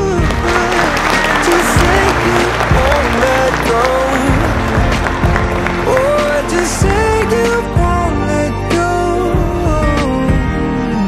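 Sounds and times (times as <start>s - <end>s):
people applauding and cheering: 0.0s - 8.6s
background music: 0.0s - 11.0s.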